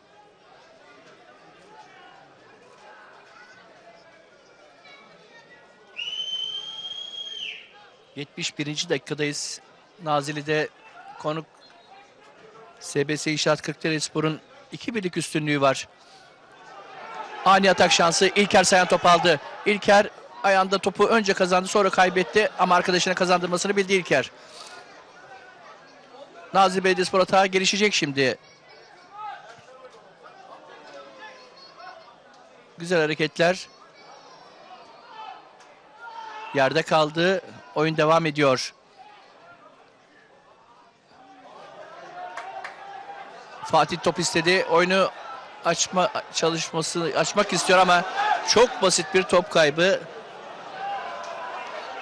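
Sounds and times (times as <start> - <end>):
referee's whistle blast: 6.0 - 7.7.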